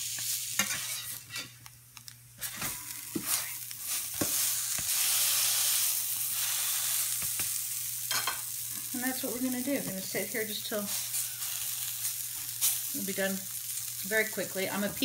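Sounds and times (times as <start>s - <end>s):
schnitzel sizzling in hot oil: 0.0s - 15.0s
metal spatula scraping pan: 0.6s - 1.6s.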